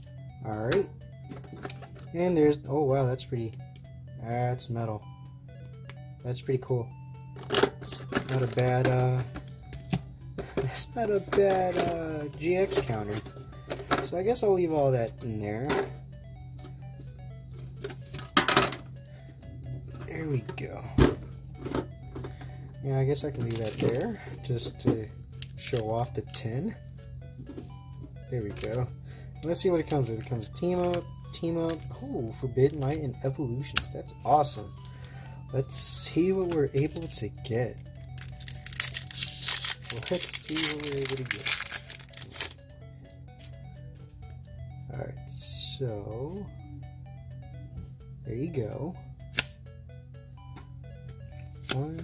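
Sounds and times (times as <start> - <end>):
soft background music: 0.0 - 52.0
foil pack crinkling and tearing: 38.1 - 42.6.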